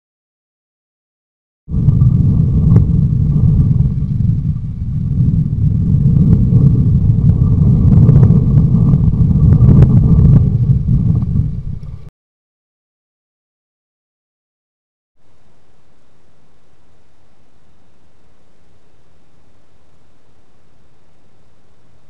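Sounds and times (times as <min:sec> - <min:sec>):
wind buffeting microphone: 0:01.7 - 0:12.1.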